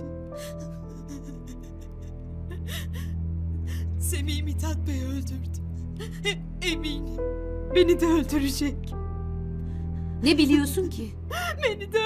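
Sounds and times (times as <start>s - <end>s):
low music drone: 0.0s - 12.0s.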